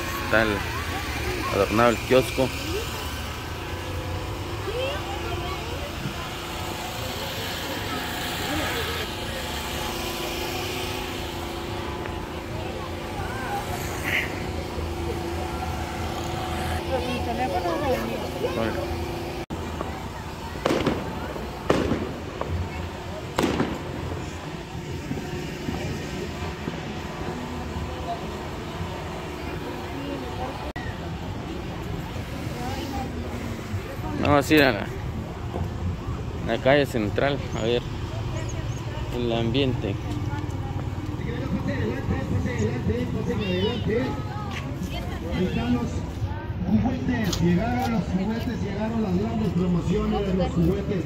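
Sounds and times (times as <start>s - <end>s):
firecracker bangs: 20.6s - 24.2s.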